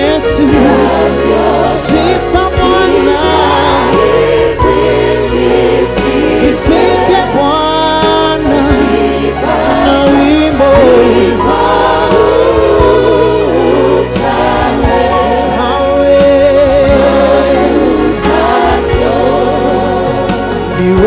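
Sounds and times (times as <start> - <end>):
bass guitar: 0.0 - 21.0
choir singing: 0.0 - 21.0
steady drum beat: 0.0 - 21.0.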